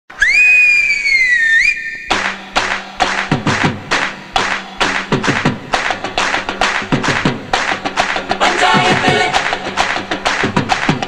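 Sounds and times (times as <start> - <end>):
loud two-finger whistle: 0.1 - 2.2.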